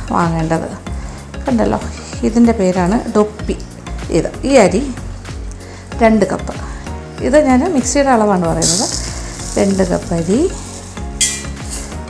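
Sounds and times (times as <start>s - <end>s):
rice grains pouring into a cup: 8.5s - 12.0s.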